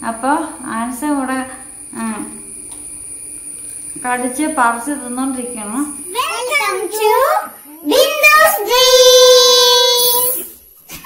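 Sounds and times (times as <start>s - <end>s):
thin high-pitched whine: 0.0s - 11.0s.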